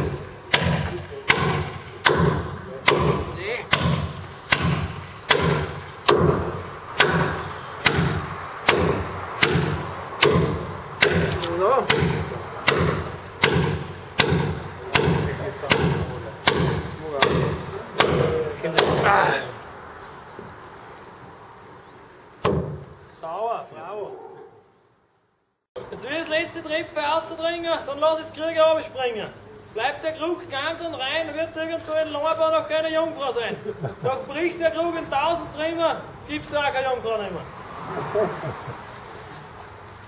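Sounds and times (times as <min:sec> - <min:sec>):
hammer driving nail into wood: 0:00.0 - 0:19.1, 0:22.4 - 0:23.0.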